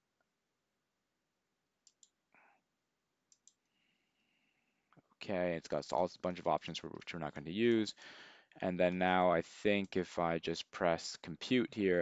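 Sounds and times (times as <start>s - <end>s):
computer mouse clicks: 1.8s - 2.1s, 3.3s - 3.6s.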